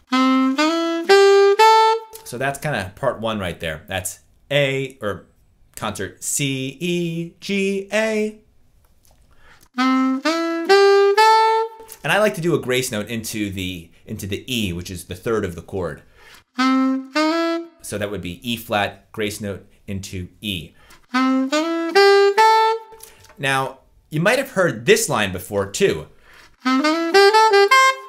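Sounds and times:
alto saxophone rising arpeggio: 0:00.0 - 0:02.1, 0:09.8 - 0:11.8, 0:16.6 - 0:17.8, 0:21.1 - 0:22.9, 0:26.6 - 0:28.0.

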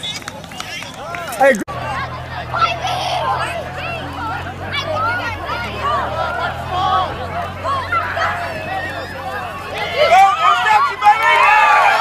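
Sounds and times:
spectators talking and shouting: 0:00.0 - 0:12.0
loud falling shout: 0:01.9 - 0:12.0.

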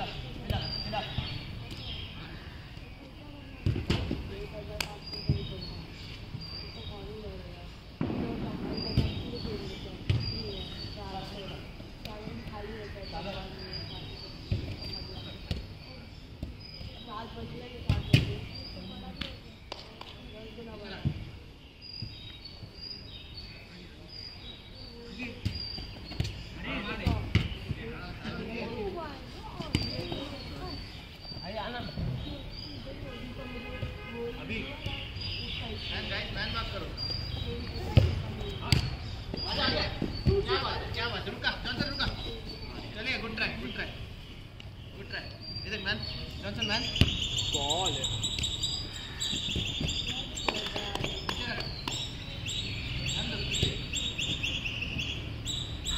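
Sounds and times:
players' voices: 0:23.6 - 0:55.1.

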